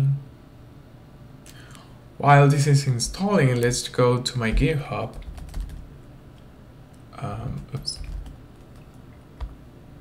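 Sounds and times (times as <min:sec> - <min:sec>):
man speaking: 0:02.2 - 0:05.2, 0:07.2 - 0:08.1.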